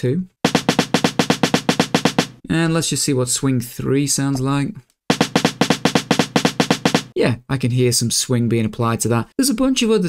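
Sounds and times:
rapid snare drum hits: 0.5s - 2.4s, 5.1s - 7.2s.

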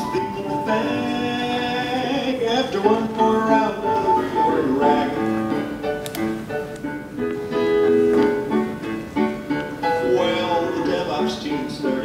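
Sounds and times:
ragtime piano through speakers: 0.0s - 12.0s.

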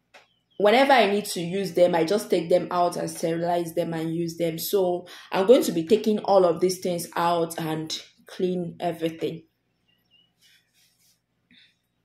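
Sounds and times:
faint distant bird chirps: 0.2s - 0.6s, 9.7s - 10.5s.

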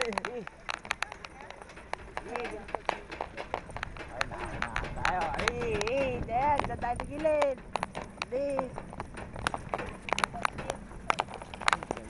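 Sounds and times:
carts rumbling: 0.0s - 12.0s
hooves clip-clopping on dirt: 0.0s - 12.0s.

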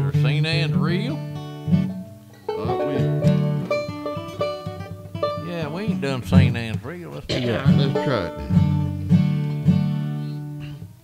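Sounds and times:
acoustic guitar picking: 0.0s - 11.0s
banjo picking: 0.0s - 11.0s.

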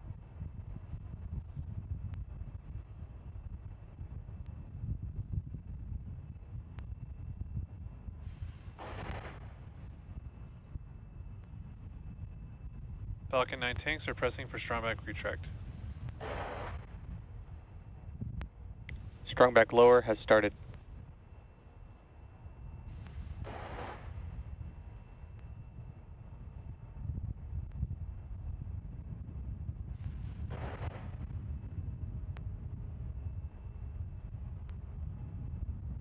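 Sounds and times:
low wind rumble: 0.0s - 36.0s.

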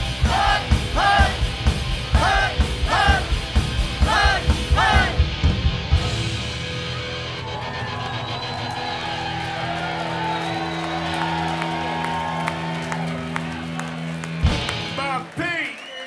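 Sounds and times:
electric guitar and bass ringing: 0.0s - 15.0s
crowd cheering and whooping: 6.6s - 16.0s.

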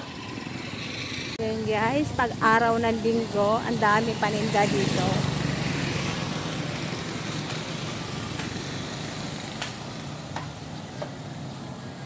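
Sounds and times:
street noise: 0.0s - 12.0s
vehicle engine passing: 0.0s - 12.0s.

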